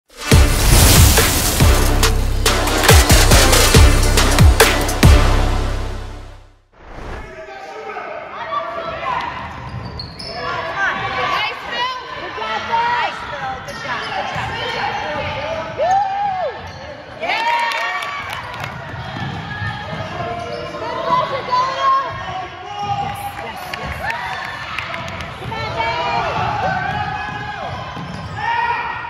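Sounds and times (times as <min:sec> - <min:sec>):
sneakers squeaking: 0:09.4 - 0:11.1, 0:13.2 - 0:17.2, 0:25.2 - 0:28.5.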